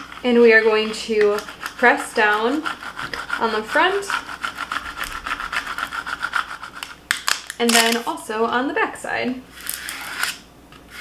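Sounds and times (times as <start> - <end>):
plastic scraper rubbing on tape: 0.0 - 7.0, 9.5 - 11.0.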